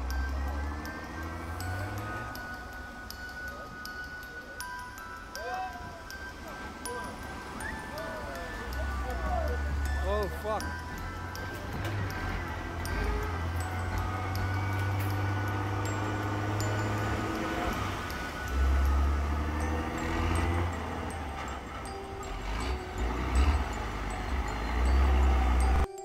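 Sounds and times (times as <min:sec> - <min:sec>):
music playing: 0:00.0 - 0:26.0
tractor engines running: 0:00.0 - 0:26.0
waves: 0:05.0 - 0:10.8, 0:15.7 - 0:21.9.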